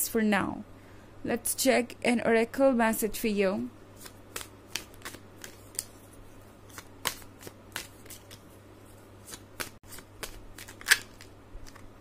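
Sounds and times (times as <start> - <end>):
cards being shuffled: 4.0 - 12.0.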